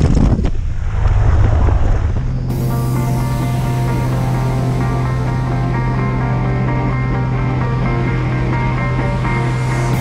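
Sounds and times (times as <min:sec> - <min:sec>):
wind buffeting microphone: 0:00.0 - 0:03.0
aircraft engine rumble: 0:00.0 - 0:10.0.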